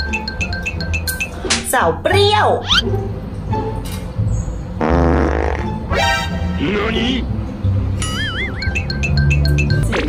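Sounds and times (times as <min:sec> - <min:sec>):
background music: 0:00.0 - 0:10.0
fart sound effect: 0:04.8 - 0:06.2.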